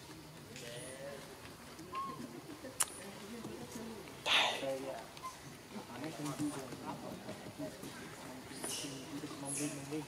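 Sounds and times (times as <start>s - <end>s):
bird cooing: 1.9s - 2.5s.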